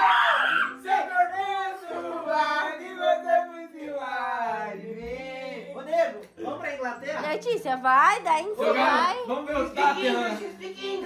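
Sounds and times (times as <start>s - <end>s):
young people yelling and shrieking: 0.0s - 1.4s.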